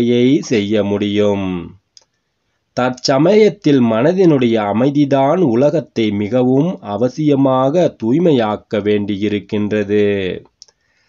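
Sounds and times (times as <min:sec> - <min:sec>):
man speaking: 0:00.0 - 0:01.9, 0:02.7 - 0:10.6
faint click: 0:10.6 - 0:10.8.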